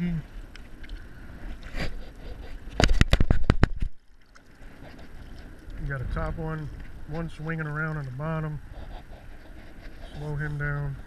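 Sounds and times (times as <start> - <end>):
water: 0.0 - 11.0
wind: 0.0 - 11.0.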